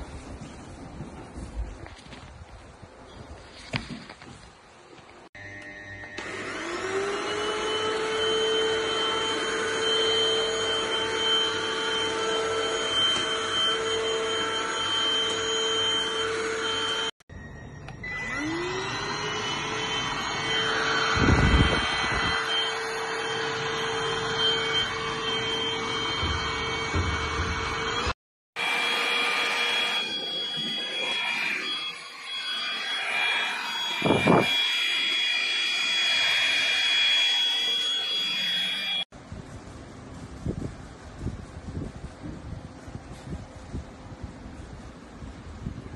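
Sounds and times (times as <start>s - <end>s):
vacuum cleaner motor whining: 5.4s - 39.1s
noisy running sound: 18.4s - 45.9s.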